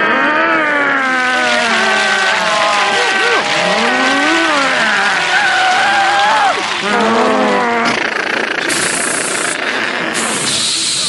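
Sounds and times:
man imitating vehicle noise: 0.0s - 10.8s.

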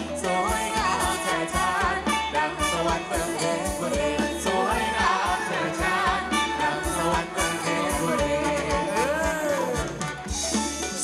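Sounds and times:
person singing: 0.0s - 10.0s
live band playing dance music: 0.0s - 11.0s
steady drum beat: 0.0s - 11.0s.

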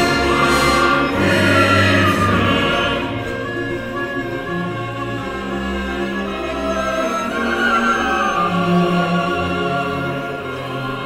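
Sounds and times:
orchestra and choir performing: 0.0s - 11.0s.

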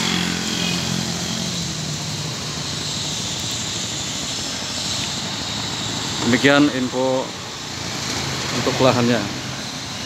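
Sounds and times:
motorcycle engine drone: 0.0s - 10.0s.

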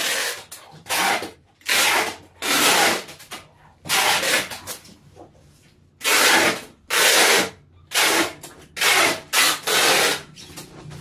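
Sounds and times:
packing tape ripping off dispenser: 0.0s - 4.8s, 6.0s - 10.5s.

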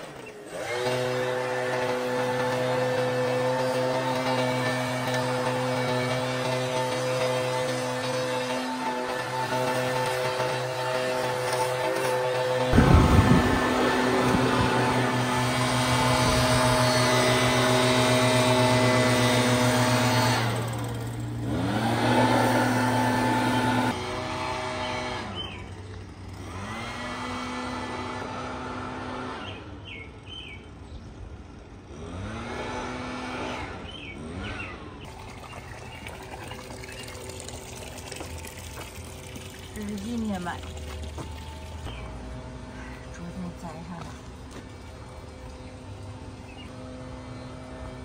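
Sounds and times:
leaf blower running: 0.0s - 30.0s, 31.7s - 48.0s.

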